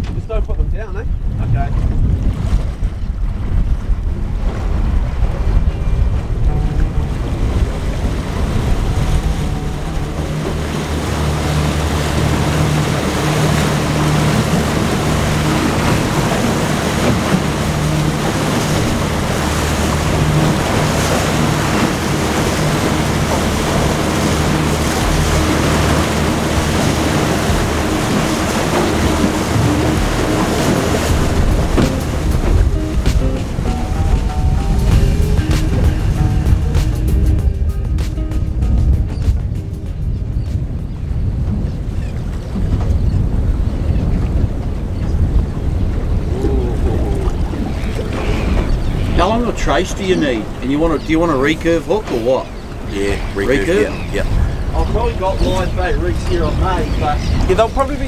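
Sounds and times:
water splashing on hull: 0.0s - 58.0s
wind on microphone: 0.0s - 58.0s
outboard motor running: 1.8s - 58.0s.

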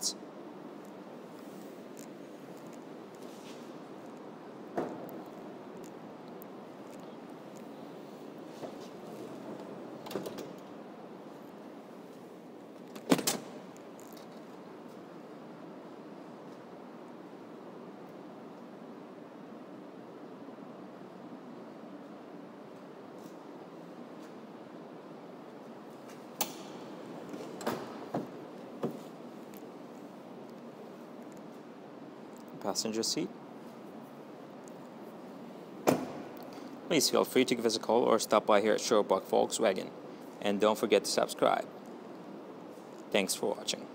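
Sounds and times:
faint background hiss: 0.0s - 43.9s
car door slamming: 35.8s - 36.3s.

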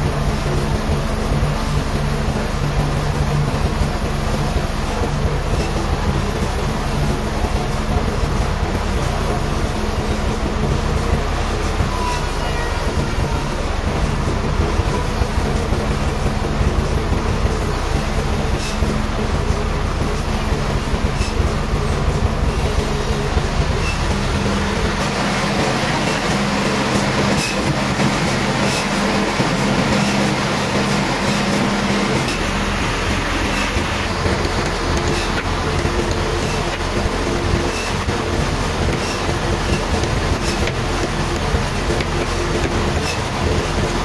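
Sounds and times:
band sawmill running: 0.0s - 44.0s.

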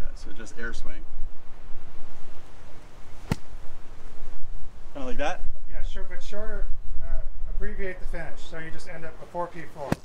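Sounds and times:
golf club swishing through air: 2.4s - 4.1s.

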